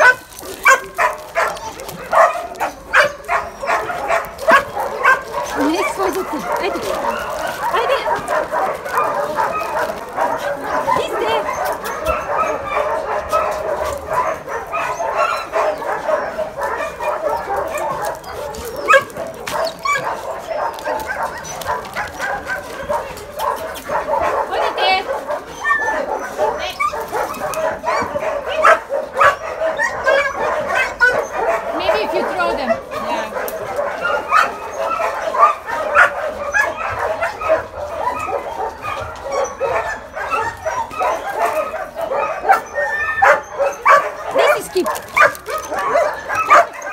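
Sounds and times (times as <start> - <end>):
dogs barking and whining: 0.0 - 46.9.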